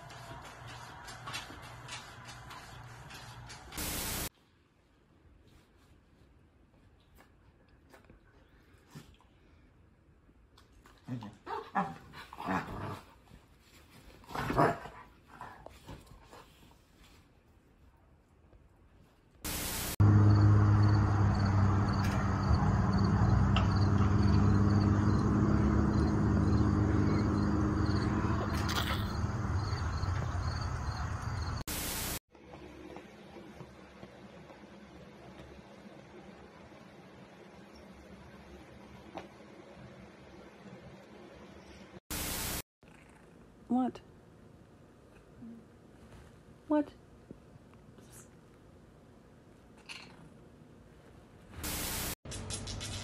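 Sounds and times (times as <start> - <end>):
burst of hiss: 3.8 - 4.3, 51.6 - 52.2
burst of static hiss: 3.8 - 4.3, 19.5 - 20.0, 31.7 - 32.2, 42.1 - 42.6, 51.6 - 52.2
low motor hum: 19.5 - 31.6.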